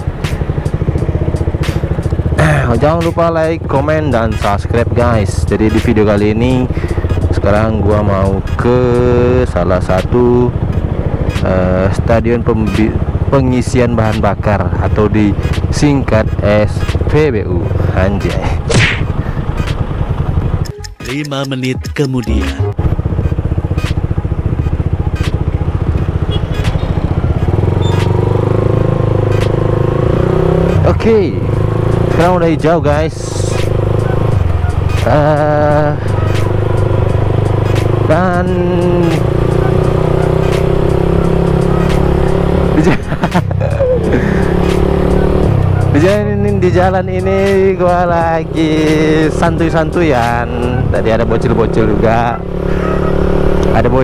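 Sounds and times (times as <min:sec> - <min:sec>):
motorcycle engine at low revs: 0:00.0 - 0:20.7, 0:22.7 - 0:54.0
sharp clicks: 0:18.2 - 0:28.3, 0:29.2 - 0:29.6, 0:36.2 - 0:38.0, 0:38.9 - 0:43.5, 0:44.5 - 0:46.2.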